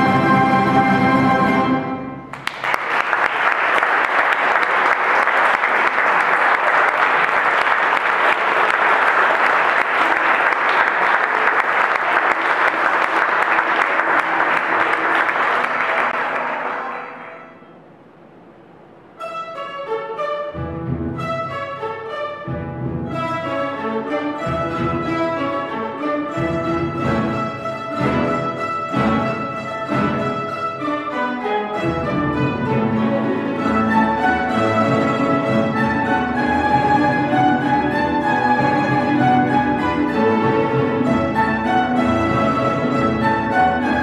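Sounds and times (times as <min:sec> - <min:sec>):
plucked-string orchestra playing: 0:00.0 - 0:02.5, 0:12.2 - 0:44.0
audience applauding: 0:02.3 - 0:17.6
double bass: 0:31.8 - 0:44.0.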